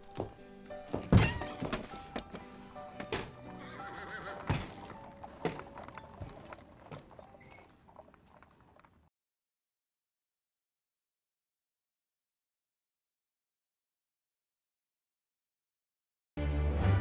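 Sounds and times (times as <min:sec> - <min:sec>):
film soundtrack music: 0:00.0 - 0:07.2, 0:16.4 - 0:17.0
hooves clip-clopping: 0:00.0 - 0:09.1
horse whinnying: 0:03.2 - 0:08.1.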